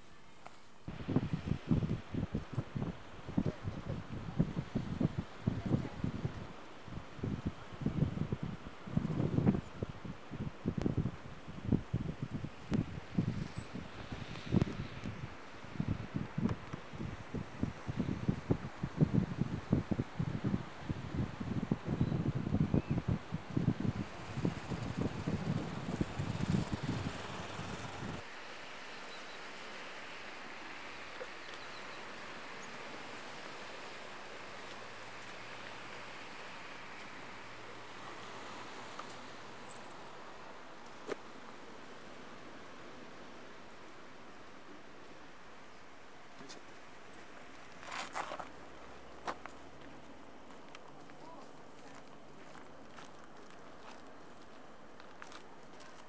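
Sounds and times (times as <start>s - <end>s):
faint hiss: 0.0s - 56.0s
wind buffeting microphone: 0.9s - 28.3s.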